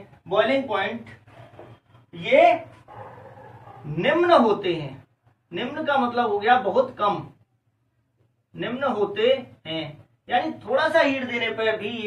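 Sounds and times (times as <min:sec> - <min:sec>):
man speaking: 0:00.0 - 0:01.2, 0:02.1 - 0:02.8, 0:03.8 - 0:07.4, 0:08.5 - 0:12.0
marker writing on whiteboard: 0:01.1 - 0:02.0.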